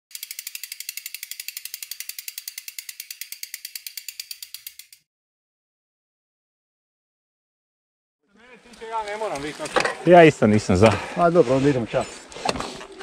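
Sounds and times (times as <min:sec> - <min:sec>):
bike hub pawls clicking rapidly: 0:00.1 - 0:05.0.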